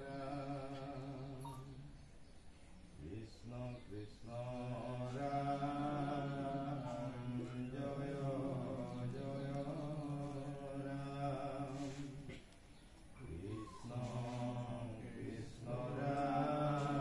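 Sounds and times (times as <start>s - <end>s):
congregation chanting in unison: 0.0s - 1.9s, 3.0s - 12.4s, 13.2s - 17.0s.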